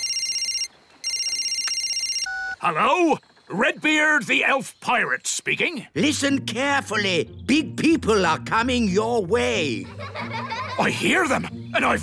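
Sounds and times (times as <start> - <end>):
cartoon phone ringing trill: 0.0 - 2.8.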